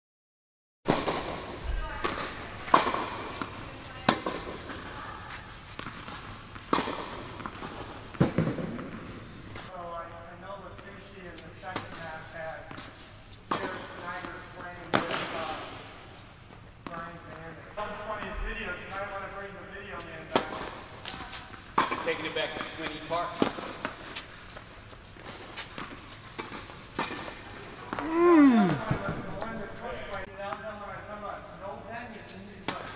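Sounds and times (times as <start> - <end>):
tennis ball struck by rackets: 2.0 - 5.0, 5.8 - 9.1
tennis ball bouncing on hard court: 2.0 - 9.1, 21.8 - 24.0.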